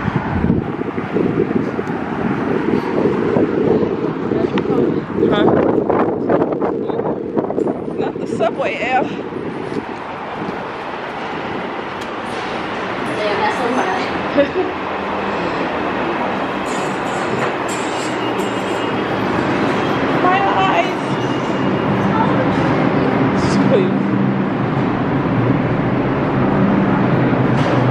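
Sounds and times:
subway train rumble: 0.0s - 27.9s
wind buffeting microphone: 0.0s - 27.9s.

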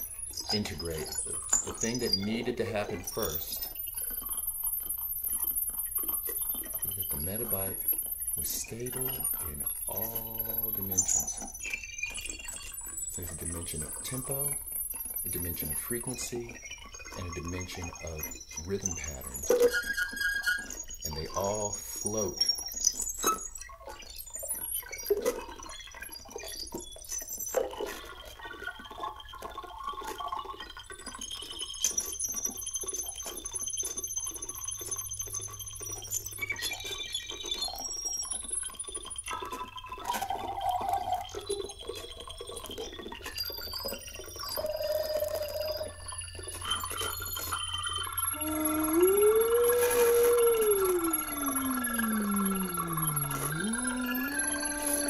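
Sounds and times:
electronic blips and clicks: 0.0s - 55.0s
synth tone sliding up and down: 38.6s - 55.0s.

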